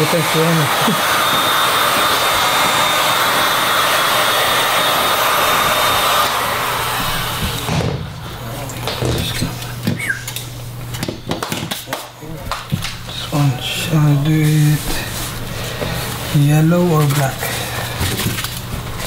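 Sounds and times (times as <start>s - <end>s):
heat gun blowing: 0.0s - 8.0s.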